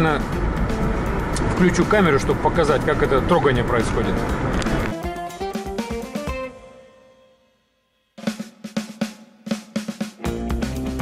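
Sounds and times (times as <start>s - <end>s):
drum kit fill: 4.2s - 6.7s, 8.2s - 11.0s.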